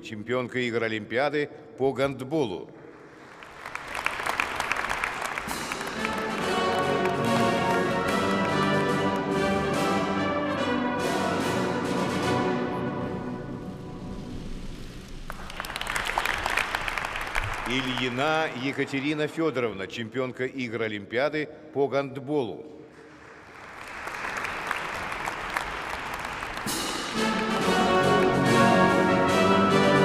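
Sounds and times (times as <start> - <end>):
audience applause: 3.0 - 9.7, 15.2 - 19.4, 23.0 - 29.0
brass orchestral fanfare: 5.4 - 14.4, 25.2 - 30.0.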